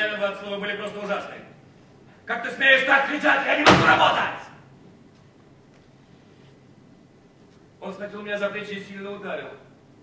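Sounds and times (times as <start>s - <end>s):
man's raised voice: 2.3s - 4.6s
loud slam ringing in hall: 3.5s - 4.6s.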